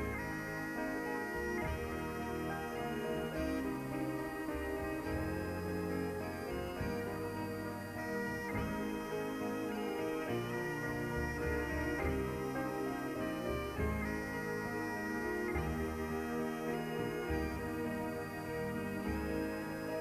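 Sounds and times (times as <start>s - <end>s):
bagpipes playing slow air: 0.0s - 20.0s
keyboard and bass accompaniment: 0.0s - 20.0s.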